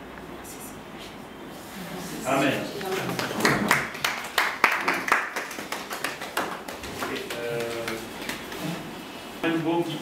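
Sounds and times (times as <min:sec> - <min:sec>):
hand claps: 0:03.1 - 0:08.8.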